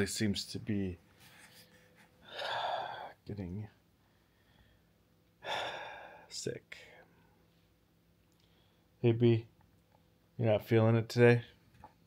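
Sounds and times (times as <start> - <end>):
man breathing in: 2.2 - 3.2, 4.0 - 6.3.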